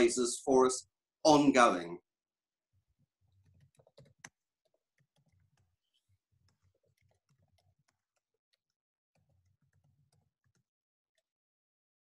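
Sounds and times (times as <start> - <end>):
faint irregular clicks: 3.3 - 11.3.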